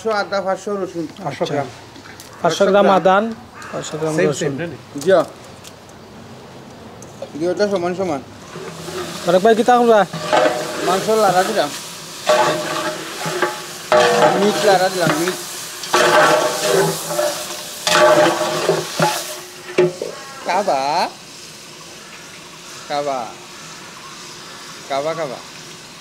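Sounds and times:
metal ladle scraping pot: 8.4 - 9.4, 10.0 - 20.4
meat sizzling: 8.4 - 26.0.

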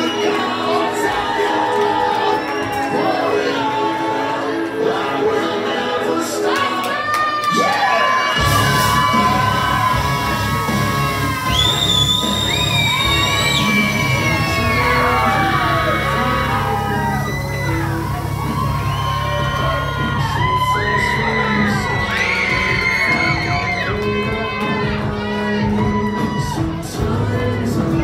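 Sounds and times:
crowd cheering and whooping: 0.0 - 5.1, 6.5 - 28.0
entrance music with heavy bass beat: 8.4 - 25.4.

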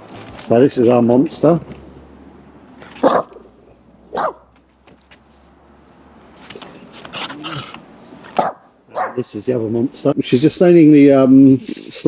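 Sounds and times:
small dog barking: 3.0 - 3.4, 4.1 - 4.5, 8.4 - 9.2.

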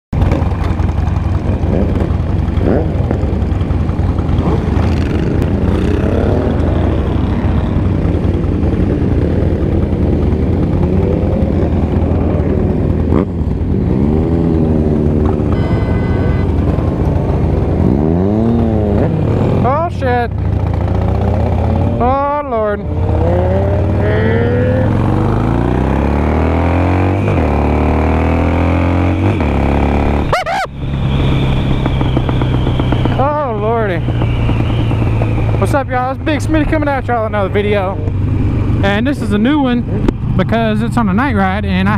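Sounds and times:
motorcycle engine running: 0.1 - 41.9
motorcycles revving: 0.1 - 41.9
motorcycle accelerating through gears: 0.2 - 41.9.

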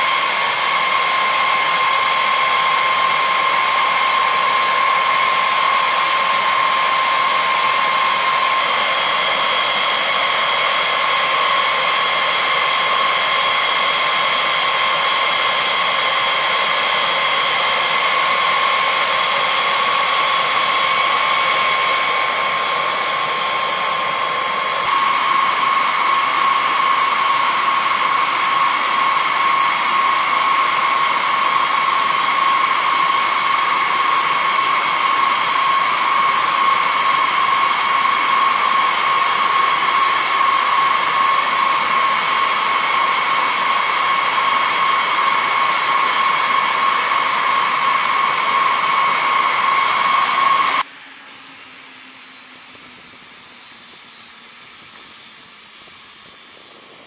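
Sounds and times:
jet turbine whine: 0.0 - 57.0.

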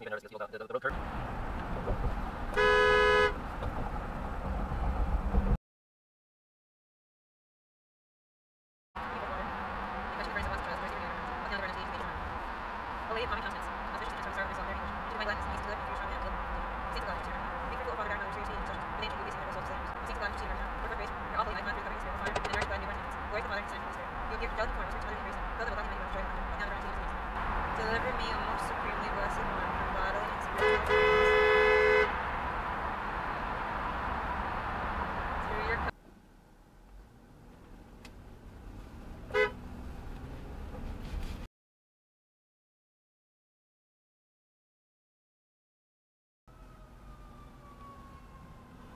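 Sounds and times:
road and tyre noise: 0.0 - 5.6, 9.0 - 41.5, 46.5 - 48.9
car horn: 2.5 - 3.4, 30.4 - 32.3, 39.3 - 39.6.

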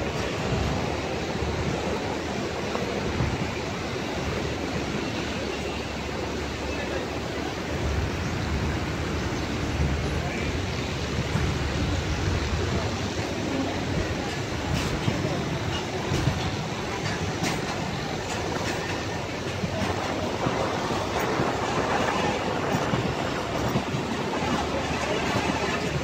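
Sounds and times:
train wheels rumbling on rails: 0.0 - 26.0
wheels clacking on rail joints: 7.8 - 26.0.

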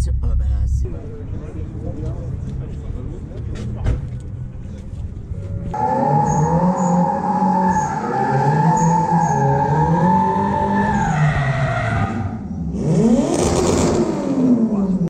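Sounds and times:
car engines revving: 0.0 - 15.0
tyre squeal: 5.8 - 12.4.

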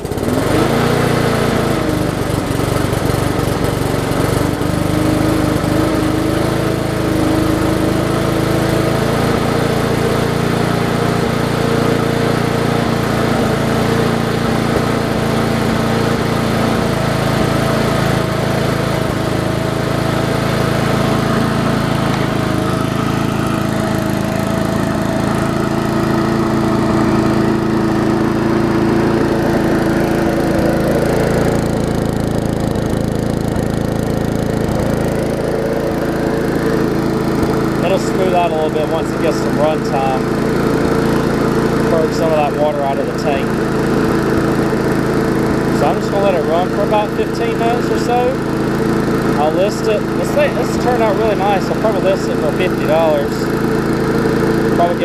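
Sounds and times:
lawn mower engine running: 0.0 - 55.0.

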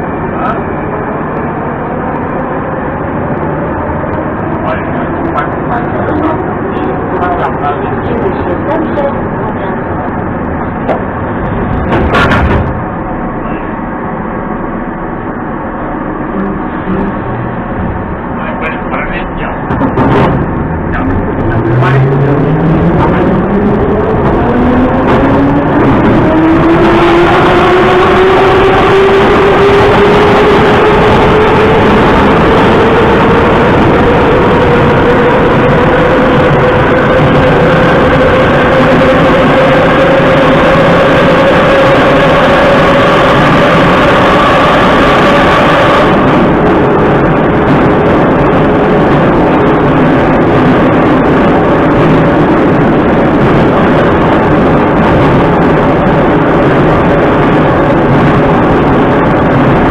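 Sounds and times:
wheels rumbling on rails: 0.0 - 59.9.

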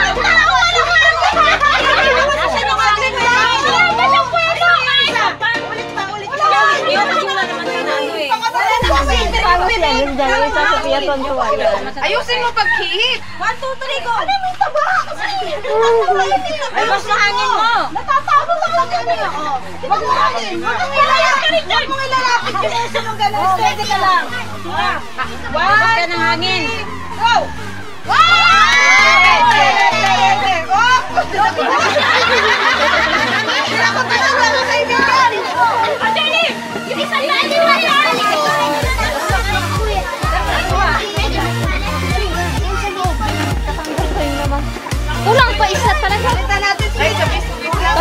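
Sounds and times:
background music: 0.0 - 48.0
crowd shouting and talking: 0.0 - 48.0
heavy bass beat: 8.6 - 14.3, 38.8 - 48.0.

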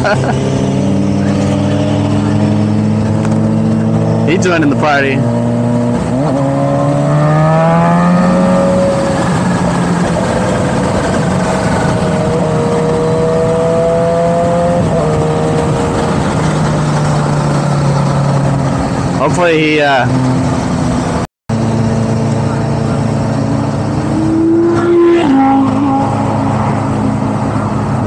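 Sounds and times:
motorcycle engine: 0.0 - 28.0
loud wind rush: 5.2 - 21.2.

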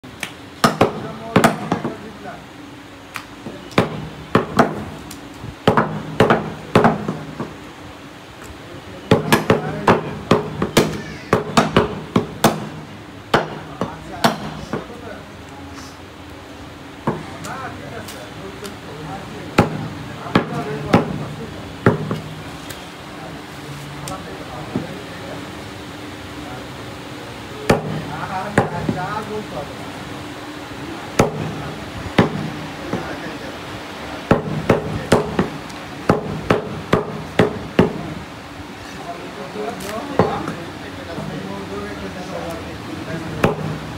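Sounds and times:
cleaver chopping meat on wood: 0.6 - 2.0, 3.7 - 5.0, 5.7 - 7.6, 9.1 - 14.9, 19.6 - 21.2, 21.9 - 22.3, 32.2 - 33.1, 34.3 - 38.1, 43.4 - 43.7
meat cleaver chopping on wood: 9.1 - 12.8.

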